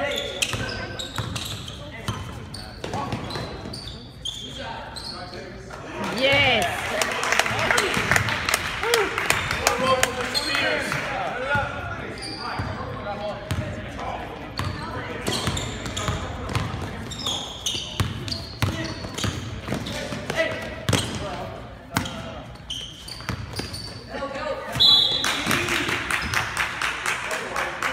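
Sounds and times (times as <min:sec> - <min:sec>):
overlapping voices in a gym: 0:05.6 - 0:22.2, 0:24.1 - 0:27.9
basketballs bouncing on wooden floor: 0:14.6 - 0:17.2.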